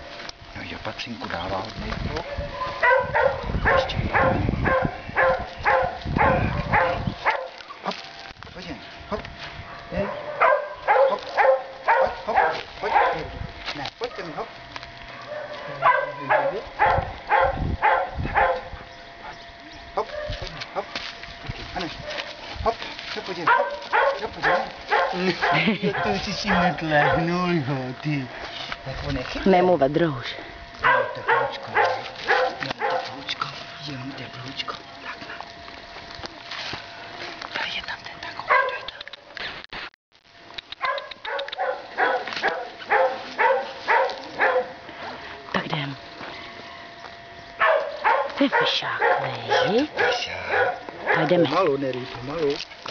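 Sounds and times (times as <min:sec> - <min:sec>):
dog barking: 0:02.2 - 0:08.0, 0:09.6 - 0:13.4, 0:14.0 - 0:14.4, 0:15.1 - 0:20.9, 0:22.0 - 0:22.4, 0:23.4 - 0:27.4, 0:30.8 - 0:33.3, 0:38.5 - 0:39.1, 0:40.8 - 0:44.8, 0:47.6 - 0:51.6
dog whining: 0:48.5 - 0:51.3.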